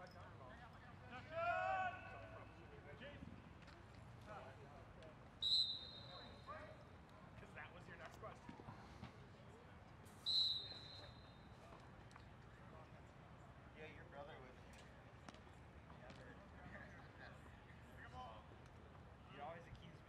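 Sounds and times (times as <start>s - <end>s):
faint voices and shouts: 1.0s - 3.3s
referee's whistle blasts: 5.4s - 6.6s, 10.2s - 11.5s.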